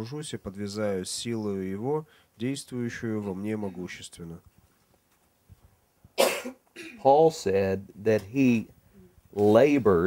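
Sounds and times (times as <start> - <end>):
man coughing: 6.2 - 7.0.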